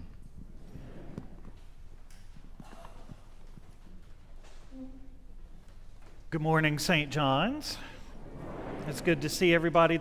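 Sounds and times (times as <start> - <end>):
faint footsteps and shuffling: 0.0 - 6.6.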